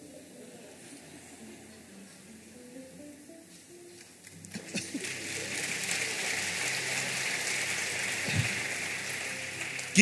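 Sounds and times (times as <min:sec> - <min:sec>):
crowd applauding: 0:04.4 - 0:10.0.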